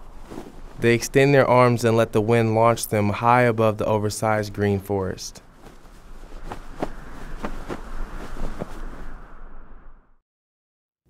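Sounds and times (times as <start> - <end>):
rushing wind with low rumble: 0.0 - 10.2
sharp buffeting knocks: 5.4 - 9.0.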